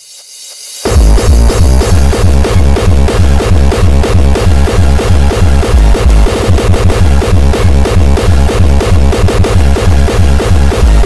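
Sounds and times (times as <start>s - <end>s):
electronic dance music with heavy bass: 0.0s - 11.0s.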